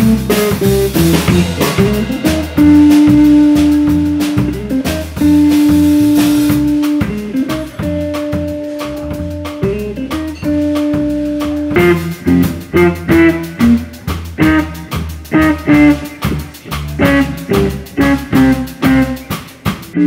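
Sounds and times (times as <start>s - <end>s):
guitar bass and drum trio playing: 0.0s - 20.0s.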